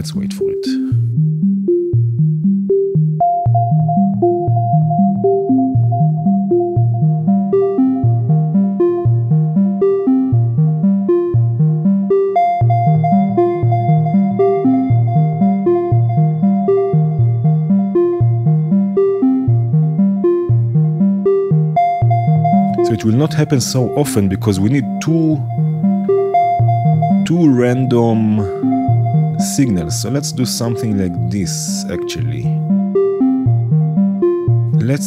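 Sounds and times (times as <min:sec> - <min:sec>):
plucked synth notes: 0:00.0 - 0:35.0
held synth tone: 0:21.8 - 0:34.9.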